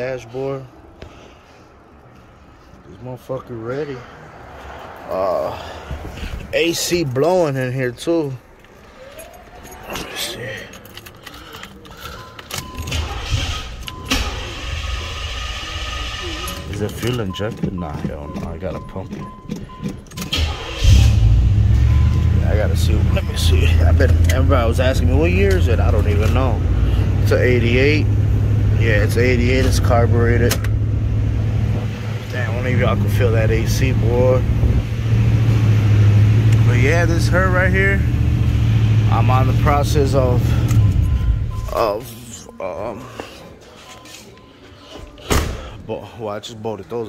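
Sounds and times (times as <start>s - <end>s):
engine low rumble: 0.0s - 46.2s
car engine cranking and starting: 7.5s - 45.8s.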